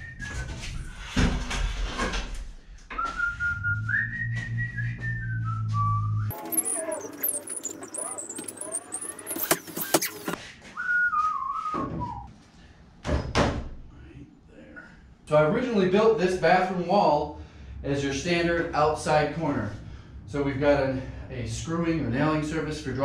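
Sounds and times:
man whistling a tune: 0:00.0 - 0:00.8, 0:02.9 - 0:06.9, 0:10.6 - 0:12.3.

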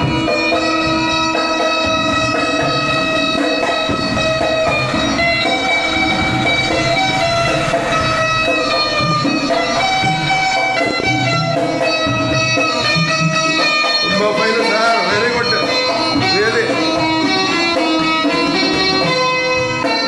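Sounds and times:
keyed zither melody: 0:00.0 - 0:20.0.

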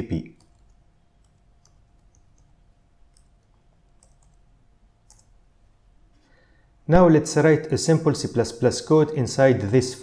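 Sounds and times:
keyboard keys clicking: 0:03.1 - 0:04.4, 0:05.0 - 0:05.3.

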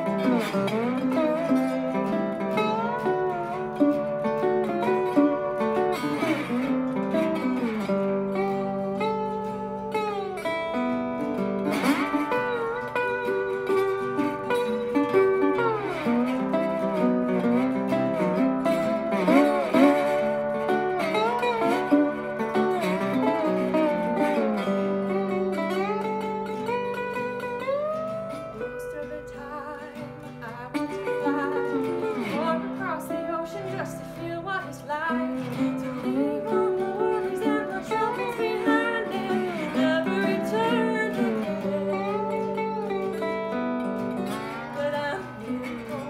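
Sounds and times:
rhythm guitar: 0:00.0 - 0:46.0
slide resonator guitar melody: 0:00.0 - 0:46.0.

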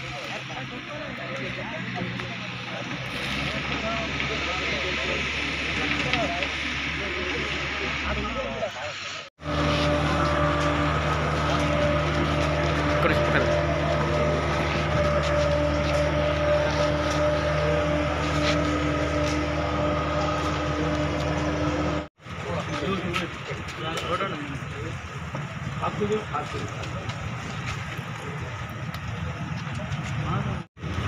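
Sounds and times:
vehicle engine idling: 0:00.0 - 0:31.0.

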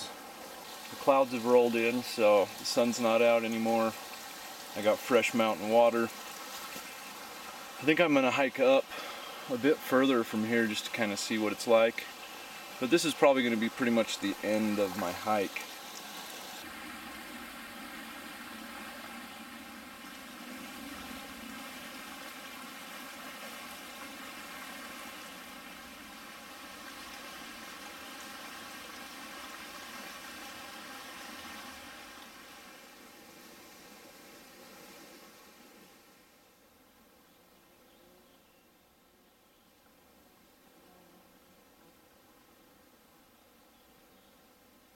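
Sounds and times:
running water rushing: 0:00.0 - 0:36.3.

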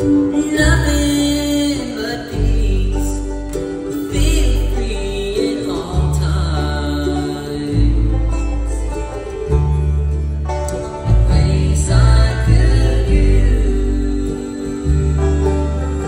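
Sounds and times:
acoustic guitar: 0:00.0 - 0:16.0
banjo: 0:00.0 - 0:16.0
fiddle: 0:00.0 - 0:16.0
mandolin: 0:00.0 - 0:16.0
upright bass: 0:00.0 - 0:16.0.

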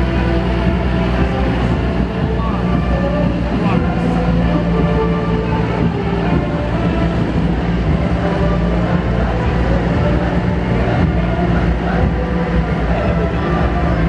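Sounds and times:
heavy trucks diesel engines rumbling: 0:00.0 - 0:14.0.

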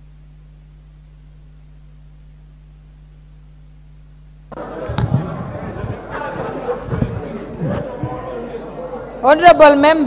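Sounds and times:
low steady hum: 0:00.0 - 0:10.0
indistinct voices in a chamber: 0:04.5 - 0:10.0.

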